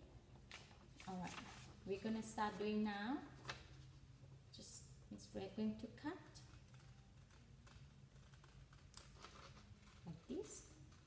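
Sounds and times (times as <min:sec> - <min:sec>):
low steady room hum: 0:00.0 - 0:11.0.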